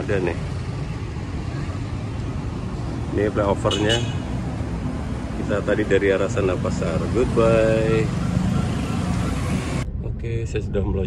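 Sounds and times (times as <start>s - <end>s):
motor scooters passing: 0.0s - 9.8s.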